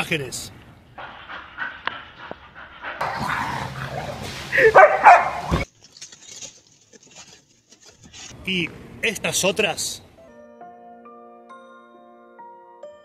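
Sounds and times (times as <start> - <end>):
dog barking: 3.0 - 5.6.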